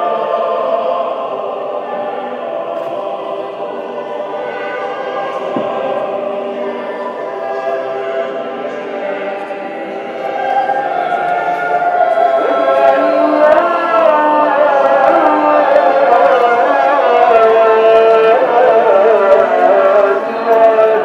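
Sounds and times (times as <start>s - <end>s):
voices singing long wavering notes: 0.0s - 21.0s.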